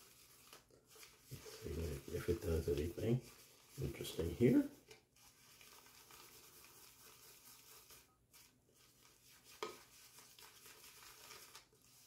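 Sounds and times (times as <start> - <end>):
shaving brush swishing on soap: 0.0 - 12.0.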